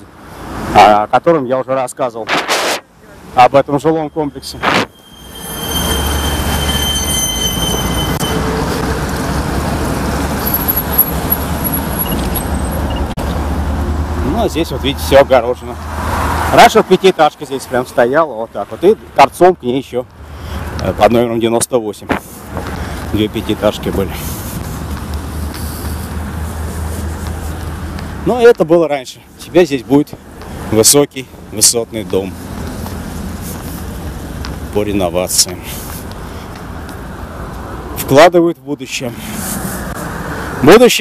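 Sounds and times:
highway traffic roar: 0:00.0 - 0:41.0
thin high whine: 0:04.2 - 0:08.5.

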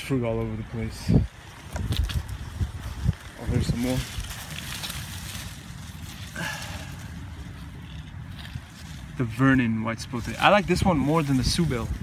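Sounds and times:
low outdoor rumble: 0:00.0 - 0:12.0
rustling of leaves: 0:00.0 - 0:12.0.

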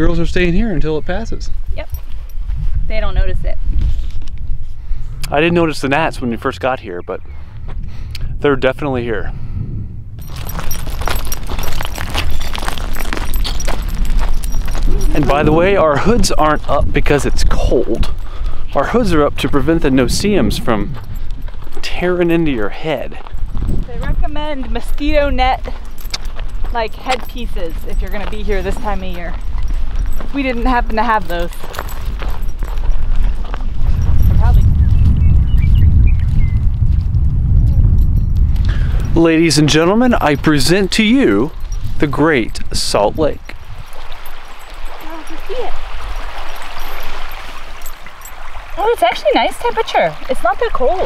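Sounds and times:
wind buffeting microphone: 0:00.0 - 0:51.0
steady low rumble: 0:02.4 - 0:29.4, 0:32.1 - 0:43.8
quick footsteps on crusted salt: 0:10.2 - 0:16.7, 0:20.5 - 0:35.2, 0:35.9 - 0:37.3.

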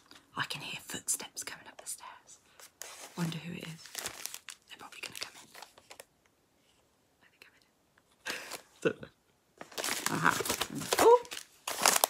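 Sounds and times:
faint whispers: 0:07.2 - 0:07.8.

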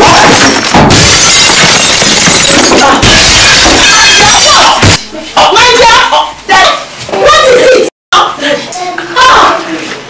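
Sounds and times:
loud crashing and shattering: 0:00.0 - 0:04.0.

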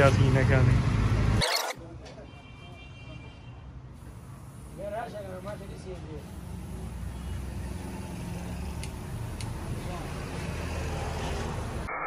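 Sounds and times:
low rumble of traffic: 0:00.0 - 0:11.9
aerosol spray hissing: 0:04.0 - 0:10.2.

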